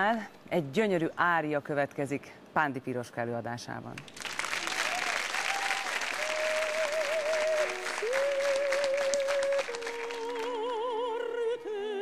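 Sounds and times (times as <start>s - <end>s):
audience applauding: 4.1s - 10.7s
opera aria singing: 6.0s - 12.0s.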